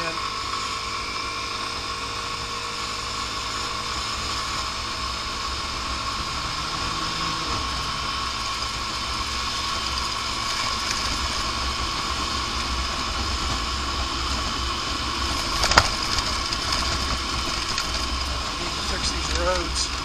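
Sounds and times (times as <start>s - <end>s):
scooter engine cruising: 0.0s - 20.0s
wind and road noise: 0.0s - 20.0s.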